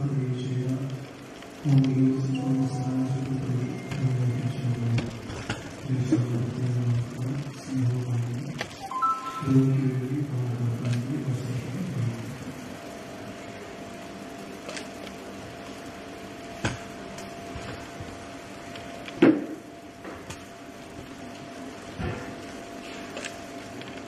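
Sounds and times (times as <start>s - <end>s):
high ringing tone: 2.2s - 3.9s, 8.7s - 10.2s.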